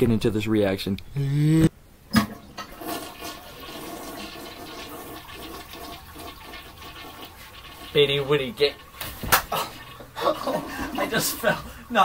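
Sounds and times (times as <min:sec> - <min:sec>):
water running: 0:02.2 - 0:12.0.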